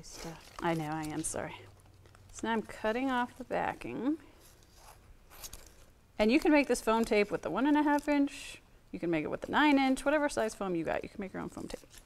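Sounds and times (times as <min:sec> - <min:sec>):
scissors cutting paper backing: 0:11.2 - 0:12.0.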